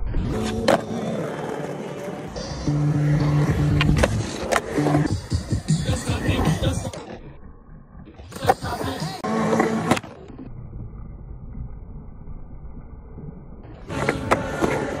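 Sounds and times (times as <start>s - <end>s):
skateboard wheels rolling on concrete: 0.0s - 7.3s, 8.2s - 11.5s, 12.2s - 15.0s.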